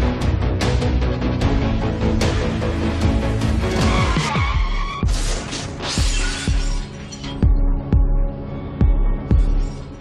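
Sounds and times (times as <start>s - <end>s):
theme music with steady beat: 0.0s - 5.8s, 6.5s - 10.0s.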